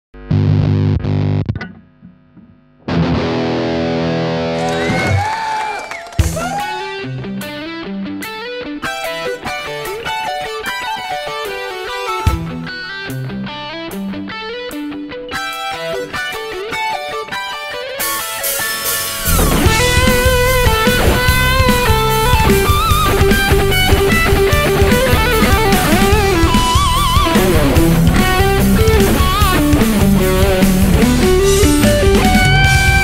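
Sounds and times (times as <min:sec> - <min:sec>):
distorted electric guitar: 0:00.1 - 0:05.3, 0:06.2 - 0:33.0.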